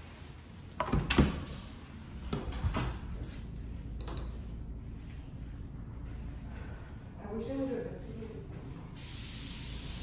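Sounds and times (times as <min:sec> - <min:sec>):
aerosol spray can hissing: 0:09.0 - 0:10.0.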